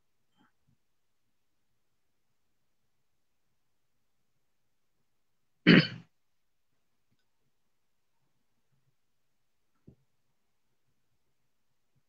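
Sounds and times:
person clearing throat: 5.7s - 6.1s.

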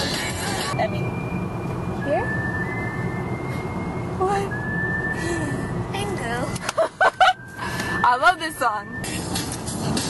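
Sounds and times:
car rumble: 0.0s - 10.0s.

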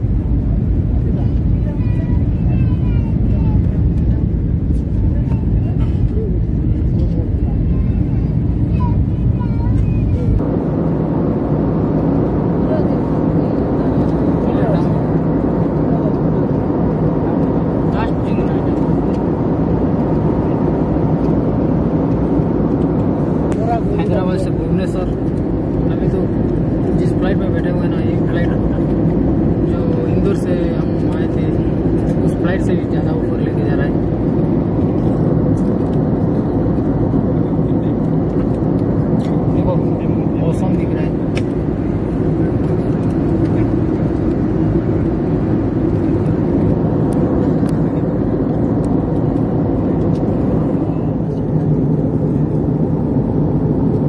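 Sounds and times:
jet airliner cabin rumble: 0.0s - 54.0s
faint voices: 0.9s - 19.5s.

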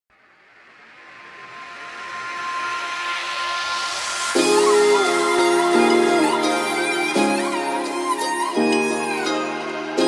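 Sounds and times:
hissing noise swell: 0.1s - 10.0s.

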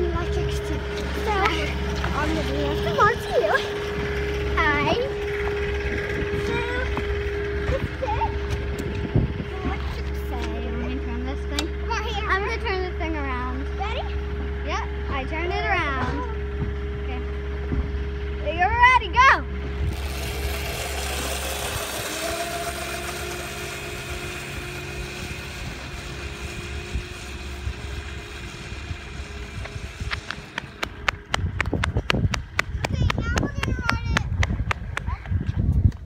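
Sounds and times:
child's voice: 0.0s - 3.8s, 4.5s - 5.1s, 6.3s - 8.6s, 9.4s - 16.4s, 32.8s - 34.4s, 35.0s - 35.7s
wind on microphone: 5.7s - 10.4s, 19.8s - 36.0s.

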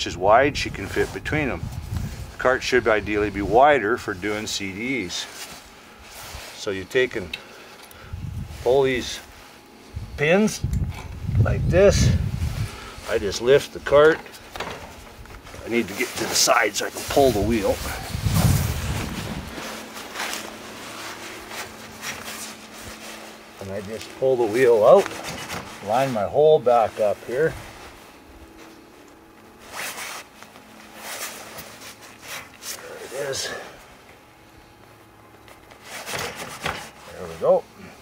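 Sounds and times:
rustling on dry grass: 12.2s - 33.4s
faint scuffs: 14.3s - 26.3s
low rumble: 17.7s - 19.7s.

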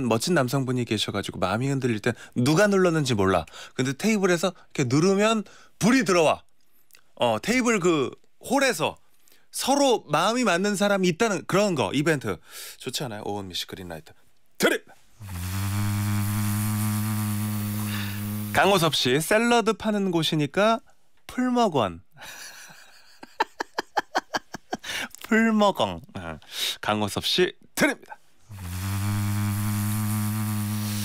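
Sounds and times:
low electronic buzzer tone: 15.2s - 18.6s, 28.5s - 31.0s.

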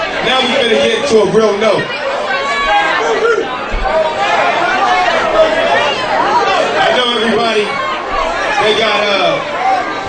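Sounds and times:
crowd chatter: 0.0s - 10.0s.

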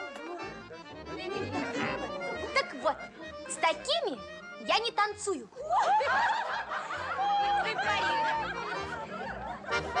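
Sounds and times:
young women laughing and giggling: 5.6s - 10.0s.

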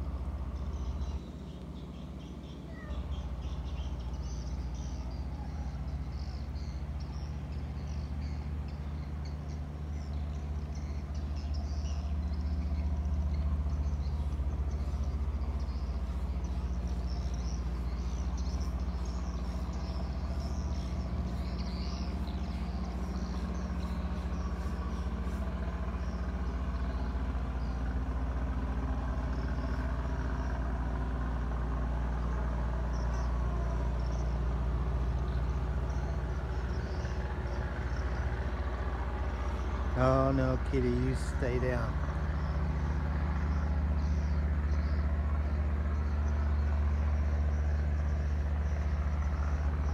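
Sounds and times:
motor humming: 0.0s - 31.0s.

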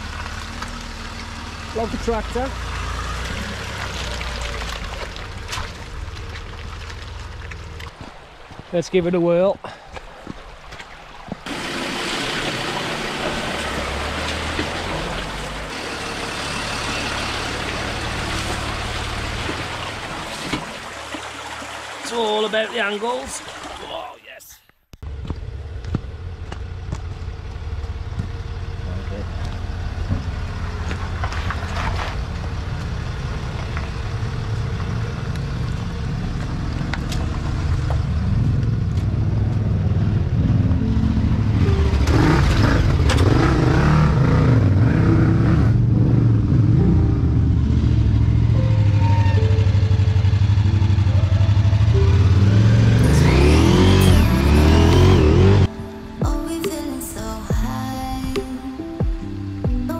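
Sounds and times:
car engine climbing a track: 0.0s - 8.4s, 25.0s - 55.9s
tyres crunching over stones: 2.7s - 8.8s, 29.3s - 34.0s.

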